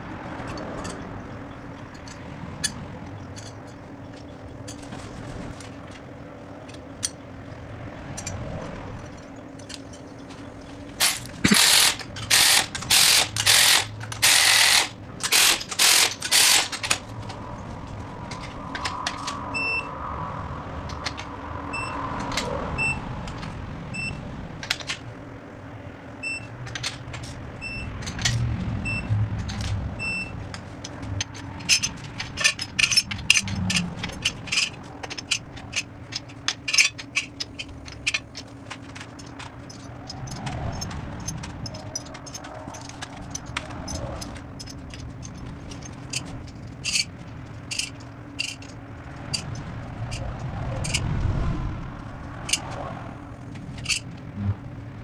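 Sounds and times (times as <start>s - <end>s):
ratchet wrench clicking: 11.0s - 17.0s, 30.8s - 38.4s, 47.7s - 50.2s.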